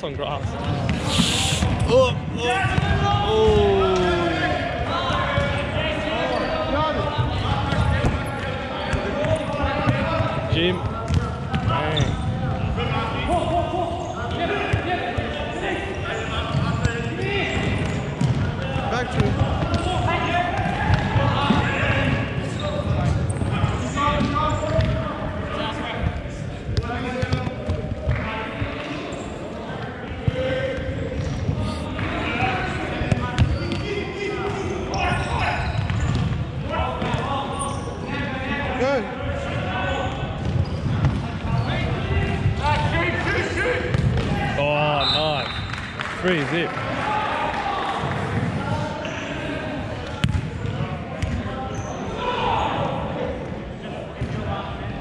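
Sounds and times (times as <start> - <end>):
players calling out: 0.8 - 4.9.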